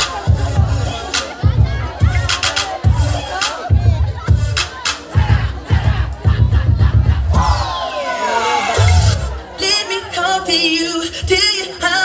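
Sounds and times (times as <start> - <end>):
crowd shouting: 0.0 - 12.0
dance music over loudspeakers: 0.0 - 12.0.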